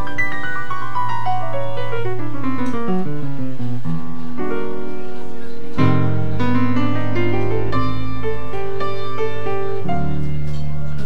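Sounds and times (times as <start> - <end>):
jazz piano trio playing: 0.0 - 11.0.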